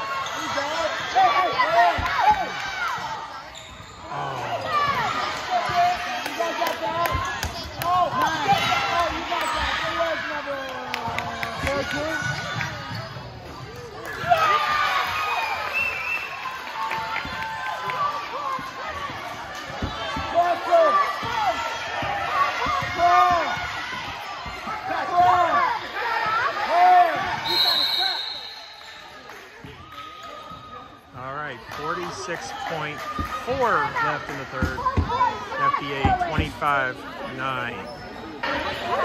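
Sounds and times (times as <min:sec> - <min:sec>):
crowd shouting and cheering: 0:00.0 - 0:39.0
high whistle blast: 0:27.4 - 0:29.0.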